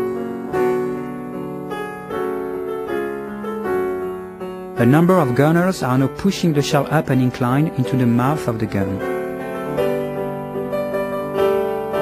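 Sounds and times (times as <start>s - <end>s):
piano music: 0.0s - 12.0s.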